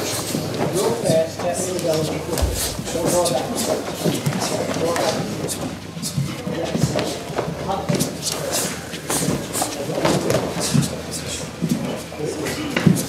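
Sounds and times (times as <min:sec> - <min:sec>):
bare feet on wooden floor: 0:02.4 - 0:03.3
kicks slapping kick pads: 0:02.4 - 0:03.5
overlapping voices: 0:02.4 - 0:03.9.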